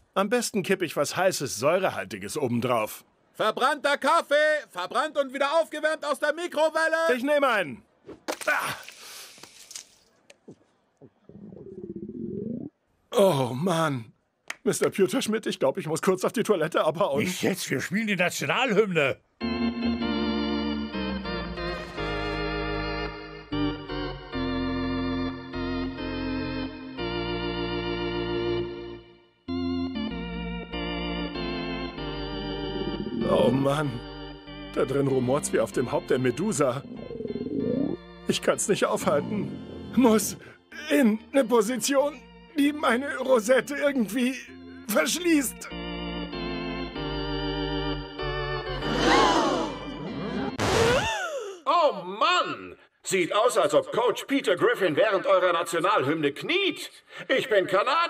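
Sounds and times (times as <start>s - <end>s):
organ playing slow chords: 19.4s - 50.6s.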